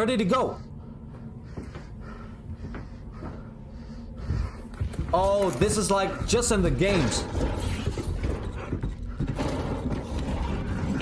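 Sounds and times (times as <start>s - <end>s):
footsteps on wooden floorboards: 0.8s - 11.0s.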